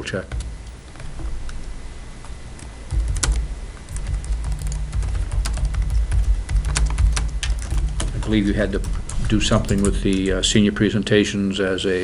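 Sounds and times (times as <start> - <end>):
laptop keyboard typing: 0.3 - 1.6, 2.6 - 10.4.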